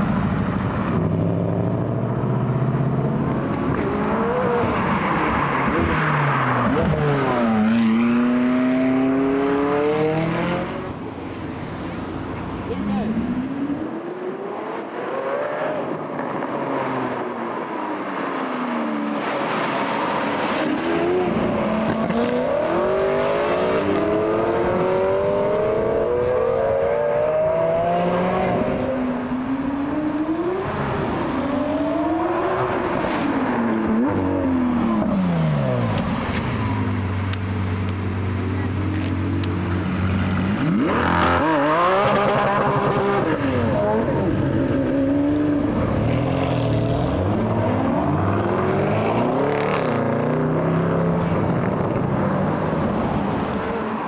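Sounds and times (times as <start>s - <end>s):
car engines accelerating: 0.0s - 54.0s.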